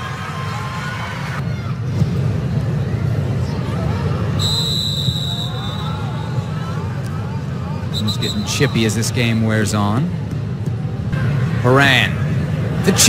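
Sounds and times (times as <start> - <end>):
stadium low rumble: 0.0 - 13.0
high whistle tone: 4.4 - 6.4, 7.9 - 8.9.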